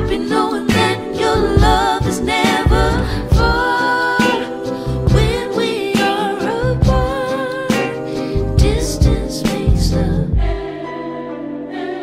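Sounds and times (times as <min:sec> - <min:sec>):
low musical accompaniment: 0:00.0 - 0:12.0
person singing: 0:00.0 - 0:12.0.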